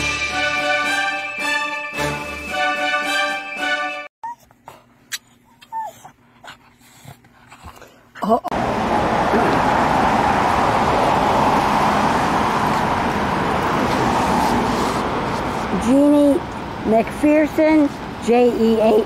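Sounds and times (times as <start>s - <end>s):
dog whimpering: 4.2s - 6.7s
loud steady rushing noise: 8.5s - 18.9s.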